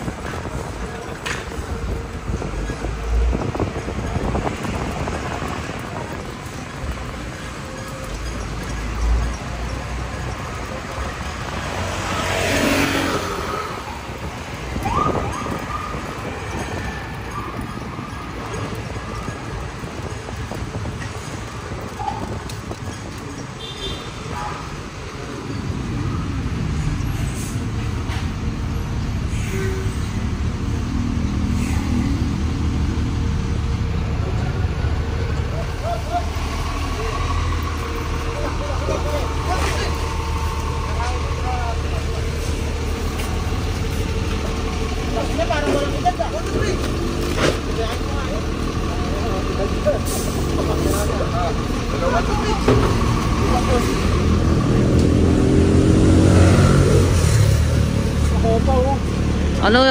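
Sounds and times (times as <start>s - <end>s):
vehicle engine rumbling: 0.0s - 59.9s
people's voices: 35.3s - 56.2s.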